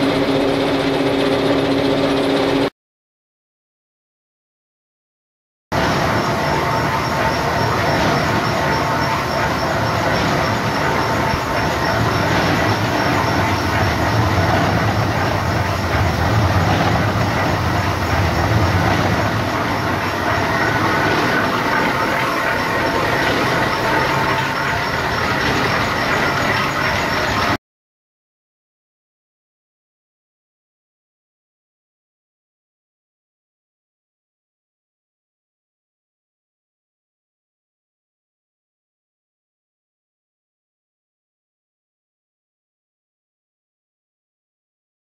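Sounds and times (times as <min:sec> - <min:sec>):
ball mill rattling and rumbling: 0:05.8 - 0:27.6.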